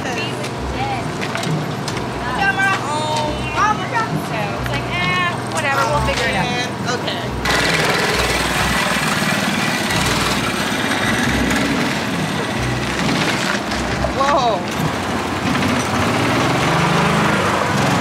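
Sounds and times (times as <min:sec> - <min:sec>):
rushing noise of movement: 0:07.4 - 0:18.0
small engine running: 0:07.4 - 0:18.0.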